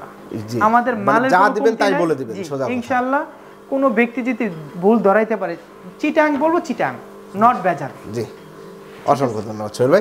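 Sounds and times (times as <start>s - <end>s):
faint steady hum: 0.0s - 10.0s
man talking: 0.4s - 2.8s, 9.1s - 10.0s.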